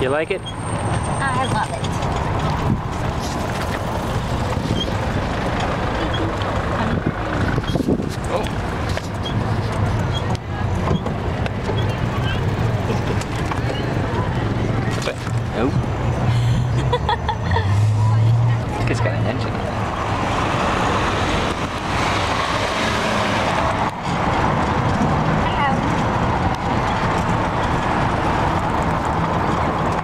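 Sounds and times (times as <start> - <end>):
tyres rumbling over cobblestones: 0.0 - 17.4, 18.1 - 30.0.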